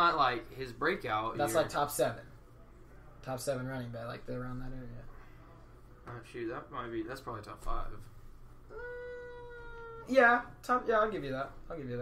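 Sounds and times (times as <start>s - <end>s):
person saying uhhh: 8.7s - 10.1s.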